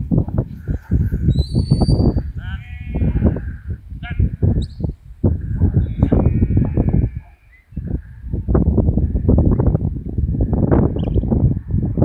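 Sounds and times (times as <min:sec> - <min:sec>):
wind buffeting microphone: 0:00.0 - 0:12.0
sheep bleating: 0:00.6 - 0:01.8, 0:05.5 - 0:07.6.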